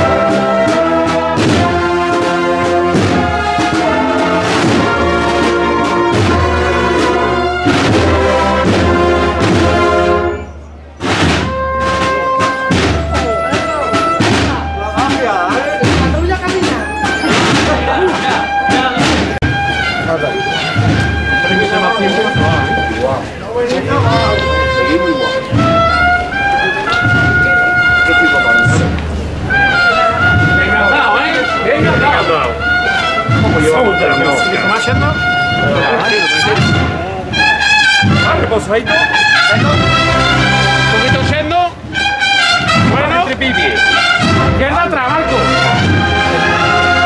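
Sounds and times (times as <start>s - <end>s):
brass band music: 0.0s - 47.0s
drum beats: 0.0s - 47.0s
voices: 0.0s - 47.0s.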